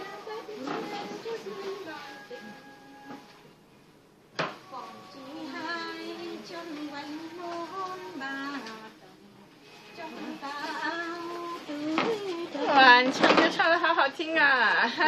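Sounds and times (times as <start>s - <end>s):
woman singing slow tune: 4.6s - 9.3s, 9.9s - 13.1s.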